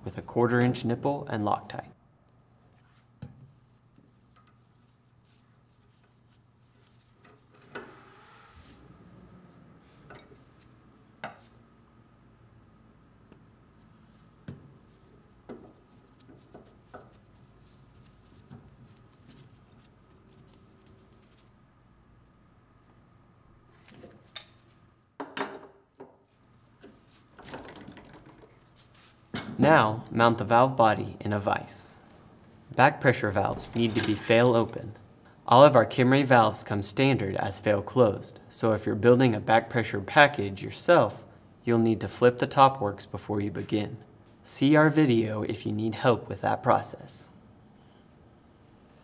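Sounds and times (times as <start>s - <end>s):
metal valve parts clunking: 27.4s - 28.6s, 33.4s - 34.8s.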